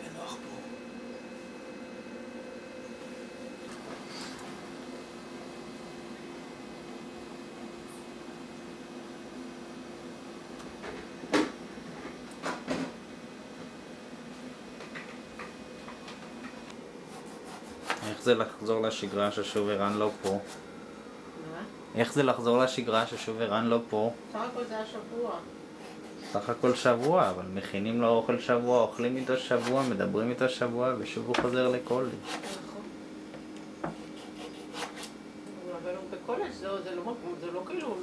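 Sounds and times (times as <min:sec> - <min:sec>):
knife scraping on whetstone: 0:17.1 - 0:18.2, 0:29.1 - 0:30.0, 0:32.1 - 0:32.7, 0:33.9 - 0:35.1.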